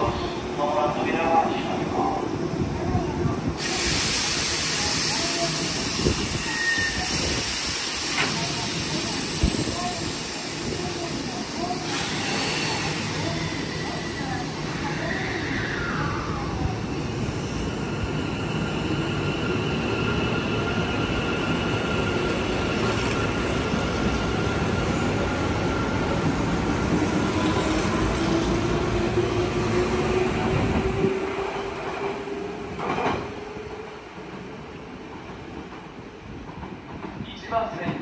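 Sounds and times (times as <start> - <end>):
train wheels rumbling on rails: 1.3 - 38.0.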